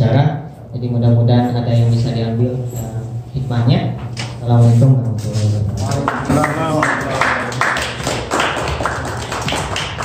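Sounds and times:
small group clapping: 5.8s - 10.0s.

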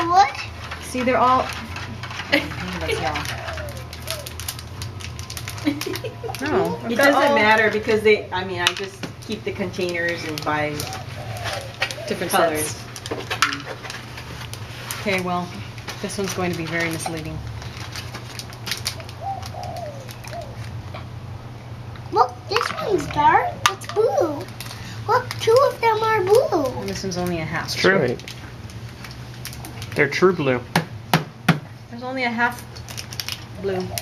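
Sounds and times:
steady low hum: 0.0s - 34.0s
dove cooing: 2.4s - 4.6s, 10.0s - 12.9s, 18.8s - 21.0s, 22.2s - 26.8s, 33.6s - 34.0s.

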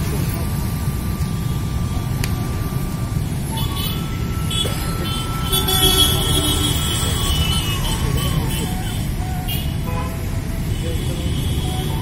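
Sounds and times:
passing cars rumbling: 0.0s - 12.0s
people's voices: 0.0s - 12.0s.

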